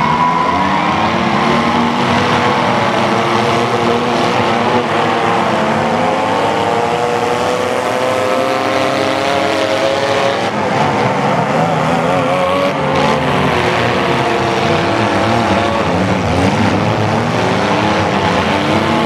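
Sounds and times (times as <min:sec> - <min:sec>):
car engines revving: 0:00.0 - 0:19.0.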